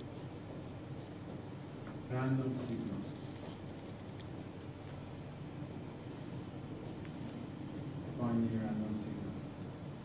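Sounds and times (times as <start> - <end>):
marker writing on whiteboard: 0.0 - 7.9
low room hum: 0.0 - 10.0.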